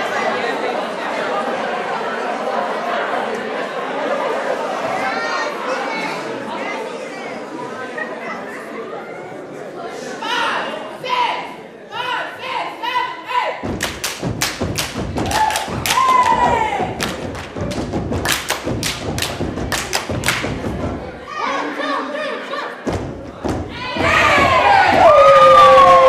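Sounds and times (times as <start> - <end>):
rhythmic stomping and clapping: 13.6 - 21.2, 22.8 - 26.0
audience shouting: 15.2 - 17.0, 23.7 - 26.0.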